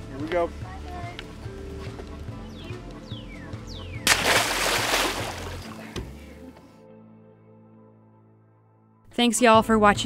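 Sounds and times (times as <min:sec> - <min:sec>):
background music with low beat: 0:00.0 - 0:06.8
loud water splash: 0:04.1 - 0:05.7.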